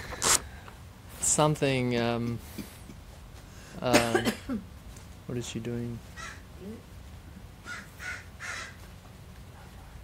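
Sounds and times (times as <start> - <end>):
crow cawing: 6.1 - 6.5, 7.6 - 8.9.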